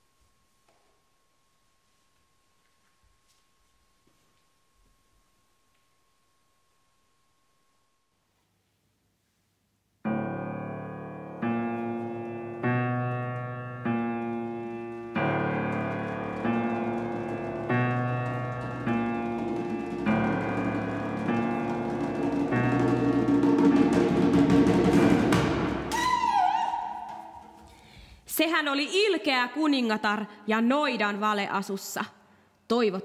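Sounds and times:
piano playing slow chords: 0:10.1 - 0:25.9
djembe drumming: 0:14.0 - 0:27.6.

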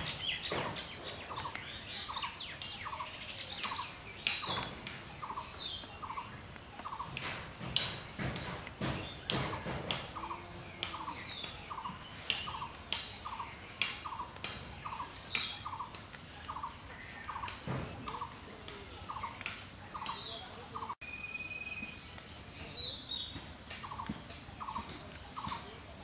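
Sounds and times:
leaves snapping and rustling: 0:00.0 - 0:20.4
birds chirping: 0:00.0 - 0:26.0
rhythmic bird call: 0:00.0 - 0:26.0.

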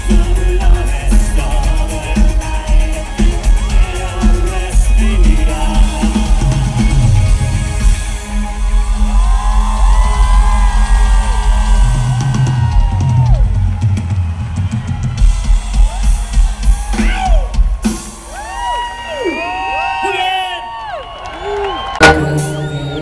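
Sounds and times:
heavy bass drum beat: 0:00.0 - 0:18.8
loud electronic pop music: 0:00.0 - 0:20.4, 0:22.0 - 0:23.0
crowd cheering and whistling: 0:00.0 - 0:23.0.

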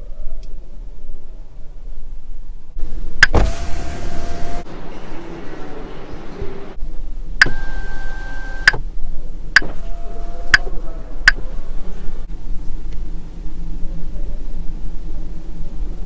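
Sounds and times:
power window motor whir: 0:03.2 - 0:04.6, 0:07.4 - 0:08.8
sharp clicks: 0:07.4 - 0:07.8, 0:08.6 - 0:08.8.

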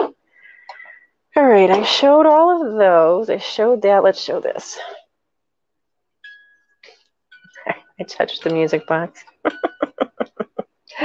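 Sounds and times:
music box notes: 0:06.2 - 0:09.8.

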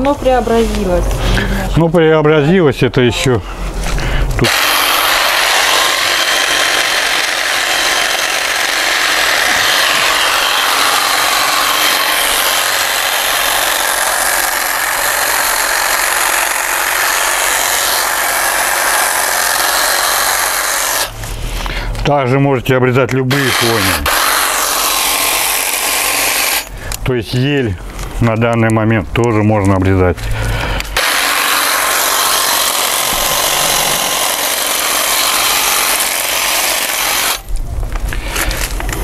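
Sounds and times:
electric hedge trimmer running: 0:04.4 - 0:21.6, 0:23.3 - 0:26.9, 0:30.8 - 0:37.5.

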